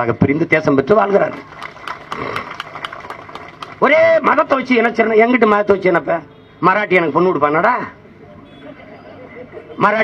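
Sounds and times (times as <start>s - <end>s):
man speaking into a microphone: 0.0s - 1.4s, 3.8s - 8.0s, 9.7s - 10.0s
low background noise: 0.0s - 10.0s.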